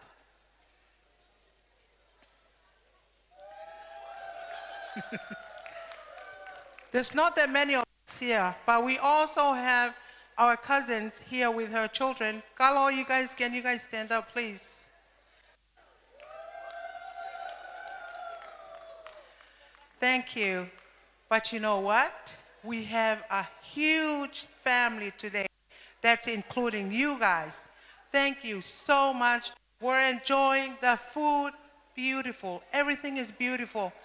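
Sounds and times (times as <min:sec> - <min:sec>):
person whooping: 0:03.3 - 0:06.7, 0:16.1 - 0:19.3.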